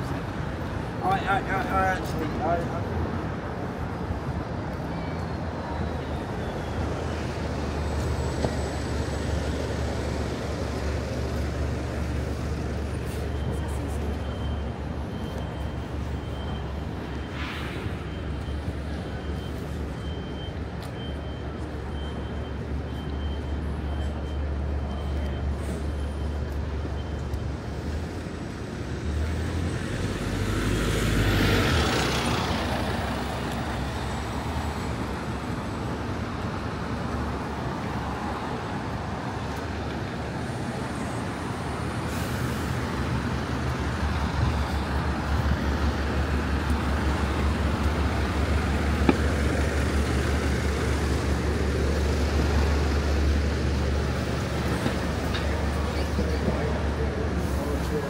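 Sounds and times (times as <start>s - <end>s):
city road traffic: 0.0s - 58.0s.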